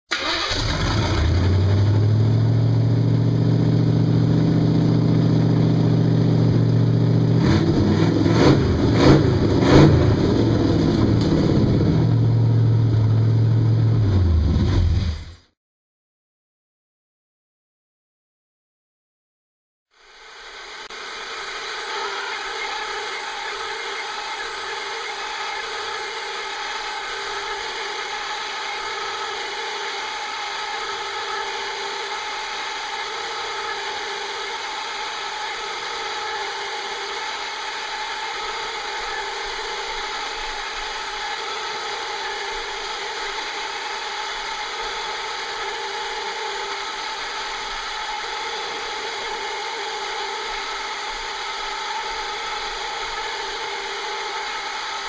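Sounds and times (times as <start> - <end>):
car engine idling and revving: 0.6 - 15.1
router spindle whining: 20.2 - 55.0
router bit cutting wood: 20.5 - 55.0.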